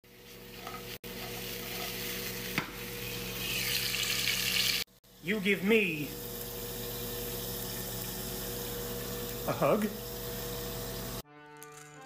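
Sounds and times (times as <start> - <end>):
food sizzling in a pan: 0.0 - 4.9, 6.1 - 11.2
steak searing: 0.0 - 4.9, 5.7 - 11.2.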